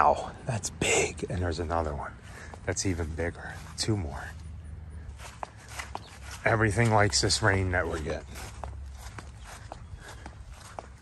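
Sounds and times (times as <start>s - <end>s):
footsteps on grass: 1.6s - 11.0s.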